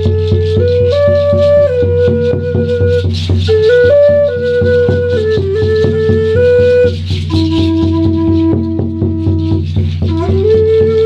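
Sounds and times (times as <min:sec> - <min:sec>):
frame drum beat: 0:00.0 - 0:11.0
shaken rattle: 0:00.0 - 0:11.0
wooden flute melody: 0:00.0 - 0:11.0.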